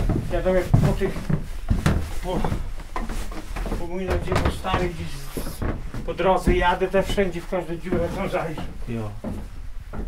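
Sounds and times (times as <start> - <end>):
men talking: 0.3 - 1.3, 2.2 - 2.7, 3.6 - 9.3.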